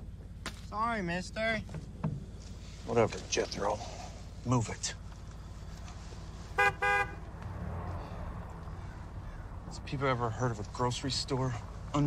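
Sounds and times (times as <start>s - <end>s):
car horn honking: 6.5s - 7.3s.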